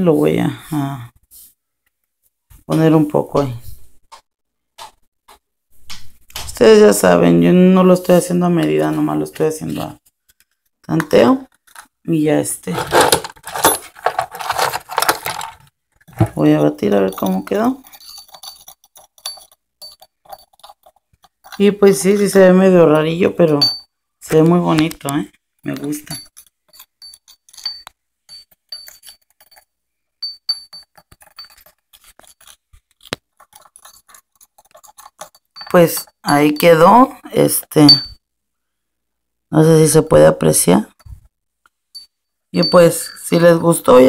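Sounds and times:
beads rattling against glass bowl: 12.7s - 23.9s, 25.6s - 38.2s, 41.9s - 44.0s
wooden stick clinking in glass dish: 16.4s - 23.9s, 25.7s - 37.1s, 37.8s - 38.2s, 41.9s - 44.0s.

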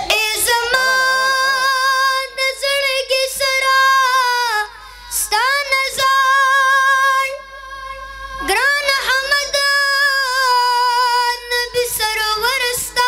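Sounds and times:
boy singing into a microphone: 0.0s - 13.0s.

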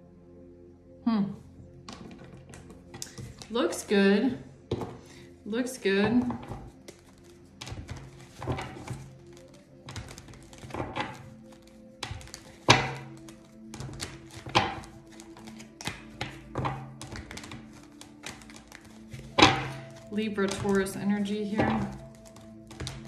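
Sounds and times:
soft background music: 0.0s - 23.0s
cards shuffling: 1.8s - 3.6s, 6.2s - 23.0s.

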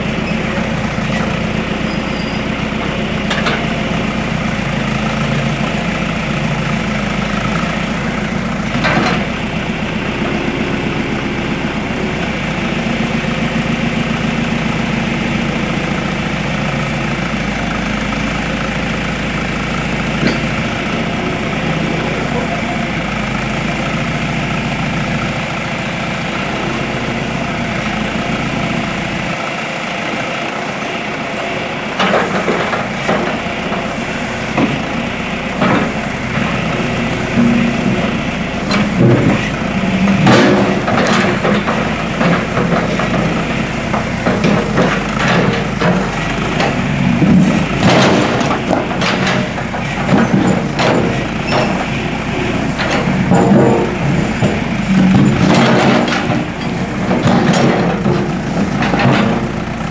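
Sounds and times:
backhoe engine running: 0.0s - 59.9s
metallic clanks and knocks: 3.2s - 3.8s, 8.7s - 9.4s, 20.1s - 22.7s, 32.0s - 59.9s.

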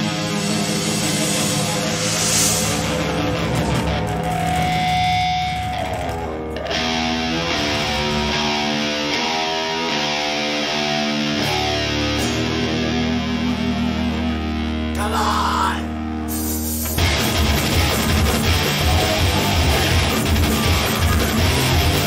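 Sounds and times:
live rock band playing: 0.0s - 15.0s, 16.1s - 22.0s.

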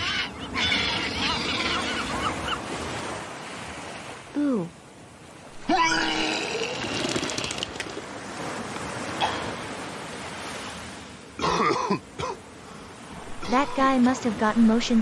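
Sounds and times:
man retching: 5.6s - 7.9s, 11.4s - 12.4s
man coughing: 11.4s - 12.4s.

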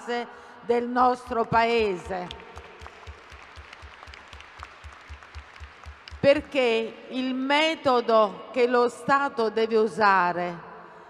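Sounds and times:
crowd applause: 2.3s - 6.2s.

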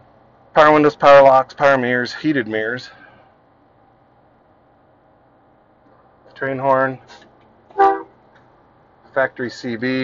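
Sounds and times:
truck train horn toot: 7.7s - 8.2s.

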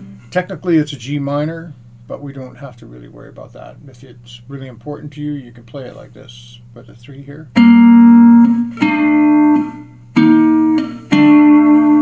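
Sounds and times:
slide guitar notes: 7.5s - 12.0s.

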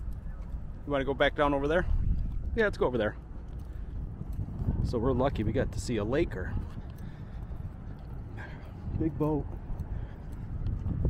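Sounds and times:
footsteps on paved path: 0.0s - 11.0s
wind rumbling on microphone: 0.0s - 11.0s.

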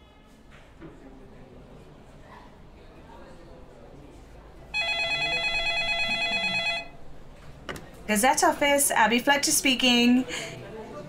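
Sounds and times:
office telephone ringing: 4.8s - 7.1s.

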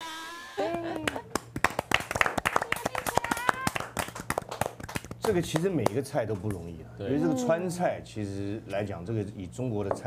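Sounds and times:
people clapping: 0.6s - 6.6s.

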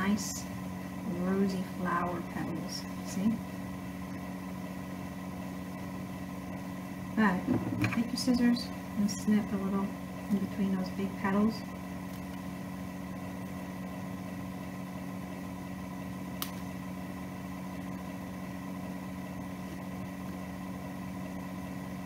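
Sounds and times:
mechanical hum: 0.0s - 22.0s
scissors snip: 16.4s - 16.7s.

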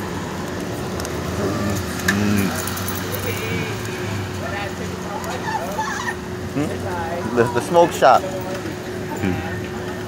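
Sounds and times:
street traffic hum: 0.0s - 10.0s
background voices: 1.2s - 5.4s.

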